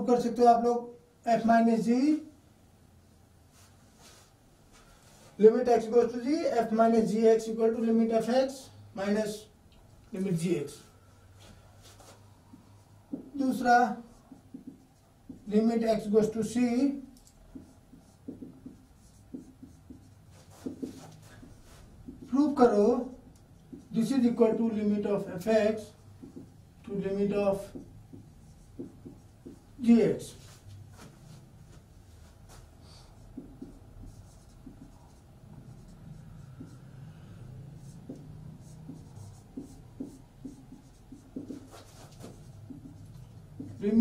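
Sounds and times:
marker writing on whiteboard: 10.2s - 44.0s.

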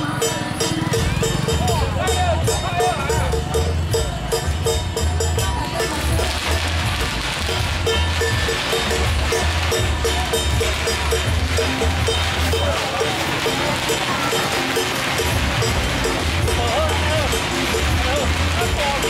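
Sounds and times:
deep droning beat: 0.9s - 19.0s.

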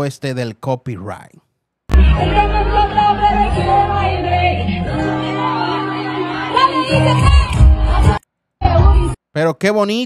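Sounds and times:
live concert music with singing: 1.9s - 9.2s.

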